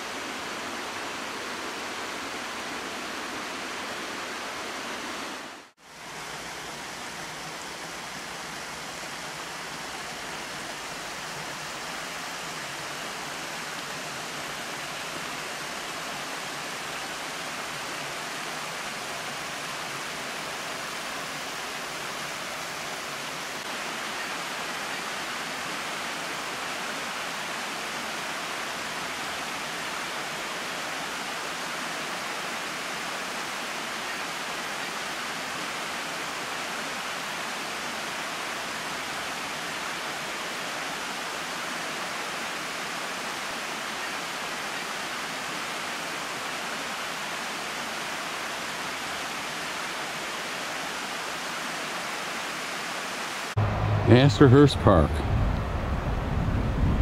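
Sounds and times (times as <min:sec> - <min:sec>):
waterfall rushing: 0:00.0 - 0:56.3.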